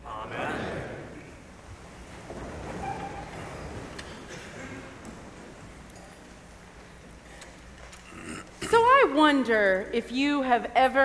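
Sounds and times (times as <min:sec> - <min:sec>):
low rumbling room noise: 0:00.0 - 0:11.0.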